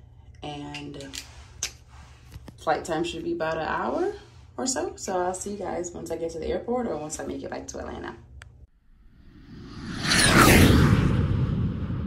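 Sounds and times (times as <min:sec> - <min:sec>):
whoosh transition effect: 0:09.0 - 0:12.0.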